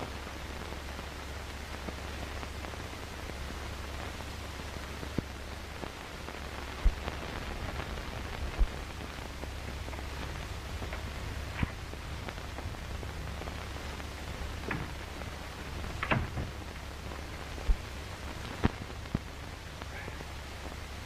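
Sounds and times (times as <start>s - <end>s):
film soundtrack hiss and hum: 0.0s - 21.0s.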